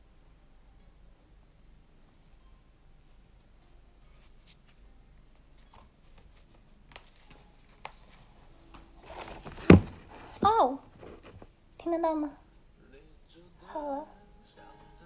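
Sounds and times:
tablet cover rustling: 5.4 - 11.5
person speaking: 9.1 - 12.3.

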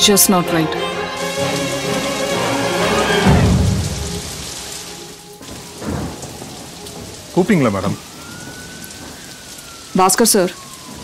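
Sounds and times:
heavy rain: 0.0 - 11.0
low roll of thunder: 1.2 - 11.0.

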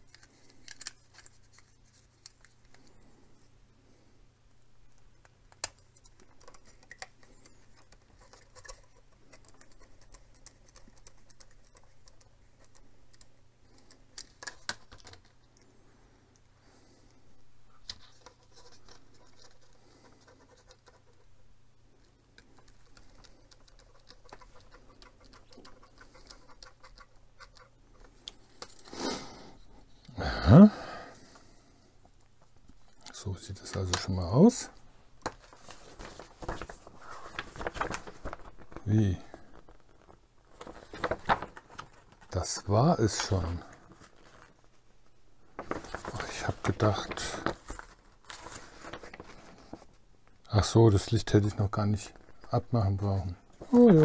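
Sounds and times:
plastic parts clicking and tapping: 0.0 - 2.9, 4.9 - 15.4.

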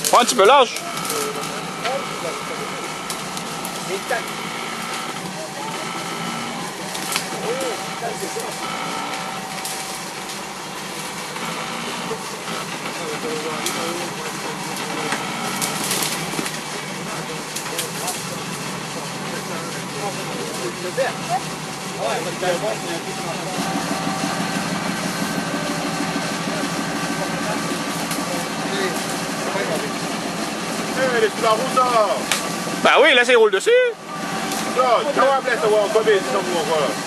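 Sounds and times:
engine running at low speed: 0.0 - 37.0
faint voices: 0.0 - 37.0.

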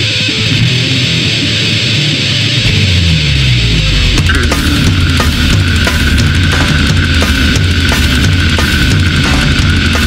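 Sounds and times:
bass guitar: 0.0 - 10.0
distorted electric guitar riffing: 0.0 - 10.0.

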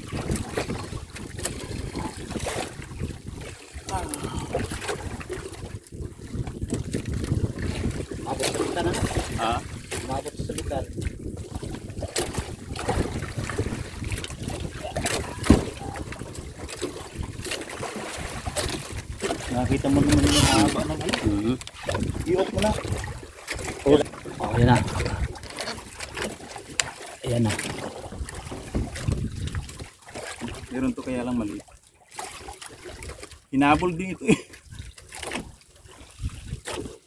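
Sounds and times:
wind buffeting microphone: 0.0 - 26.2, 28.0 - 30.7, 36.1 - 36.9
sea waves: 0.0 - 37.0.

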